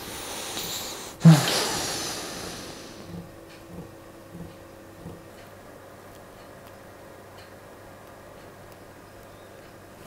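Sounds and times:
man sighing: 0:01.1 - 0:03.0.

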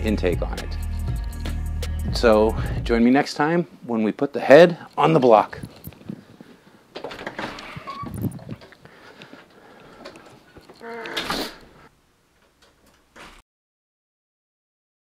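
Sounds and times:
door opening and shutting: 0:06.9 - 0:08.8, 0:10.0 - 0:11.8, 0:12.4 - 0:13.4
short pitched squeak: 0:07.6 - 0:08.2.

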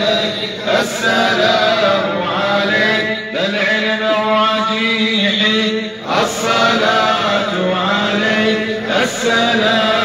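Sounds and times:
men chanting: 0:00.0 - 0:10.0.

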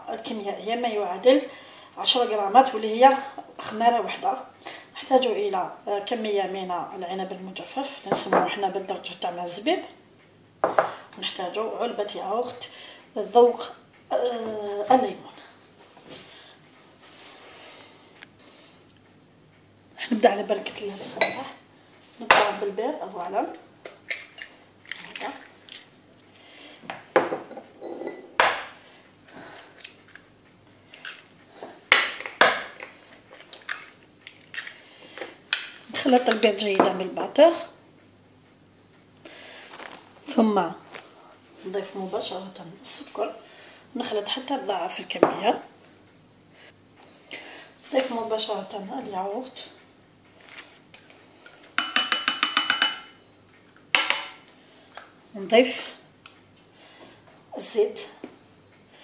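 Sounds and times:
soft handling sounds: 0:39.6 - 0:41.3.

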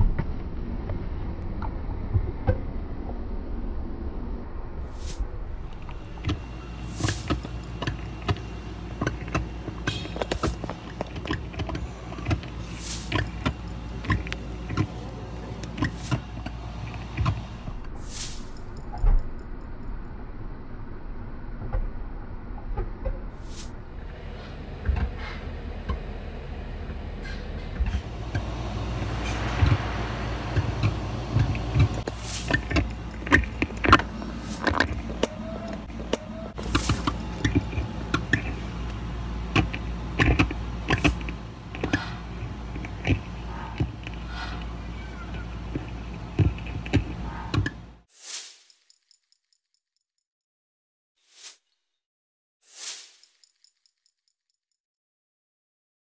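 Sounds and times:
steady low rumble: 0:00.0 - 0:48.0.

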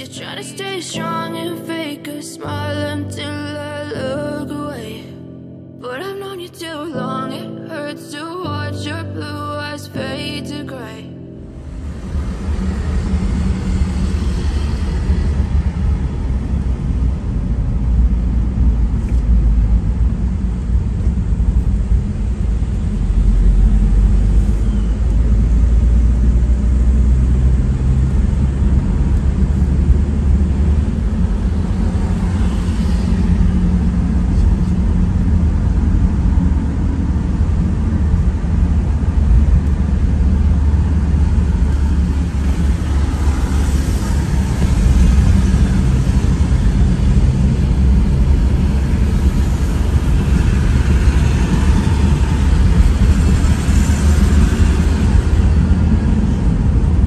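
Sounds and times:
car driving in traffic: 0:11.5 - 0:57.0.

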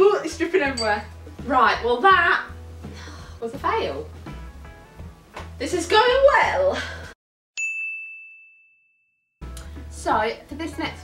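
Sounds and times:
bright bell-like ding: 0:07.6 - 0:09.0.

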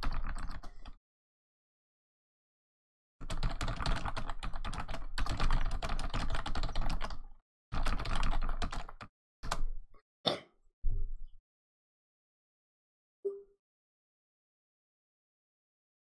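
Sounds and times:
fast typing on keyboard: 0:00.0 - 0:01.0, 0:03.2 - 0:09.7.

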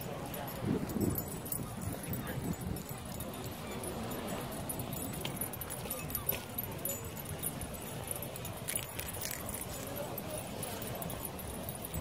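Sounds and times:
dog harness metal jingling: 0:00.0 - 0:12.0.

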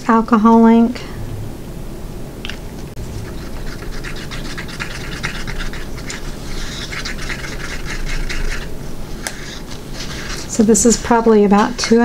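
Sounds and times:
wooden stick scraping in cup: 0:03.1 - 0:12.0.

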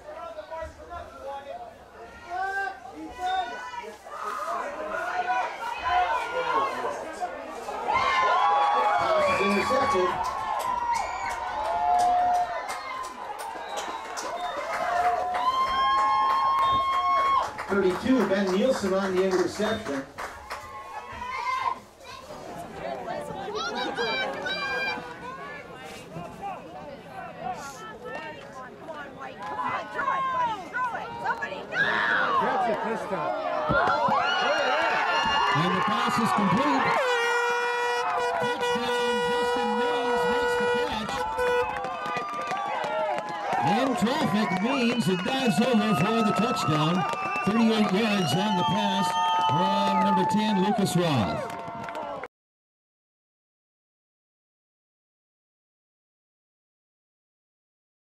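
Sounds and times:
spectators shouting and cheering: 0:01.8 - 0:52.3
air horn blasts: 0:36.9 - 0:41.9.

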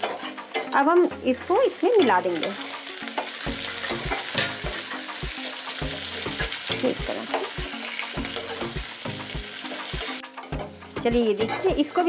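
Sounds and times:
metal spatula scraping a pan: 0:00.0 - 0:00.8, 0:01.9 - 0:08.8, 0:09.5 - 0:12.0
vegetables sizzling in hot oil: 0:00.0 - 0:12.0.

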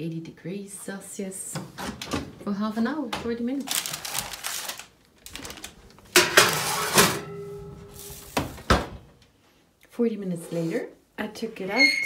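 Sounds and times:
metal baking tray clattering: 0:06.1 - 0:08.4.

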